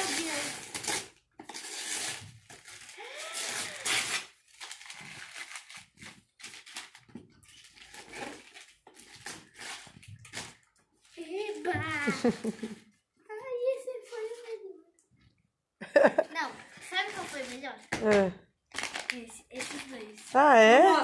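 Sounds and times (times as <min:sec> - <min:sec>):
wrapping paper tearing and rustling: 0:00.0 - 0:12.8, 0:16.8 - 0:17.9, 0:18.7 - 0:21.0.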